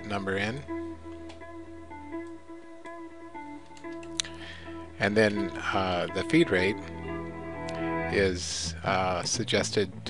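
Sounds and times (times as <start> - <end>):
soft guitar music: 0.0 - 10.0.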